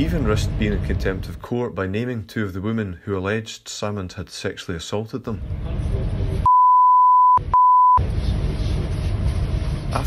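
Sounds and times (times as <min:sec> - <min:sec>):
censor bleeps: 0:06.5 - 0:08.0.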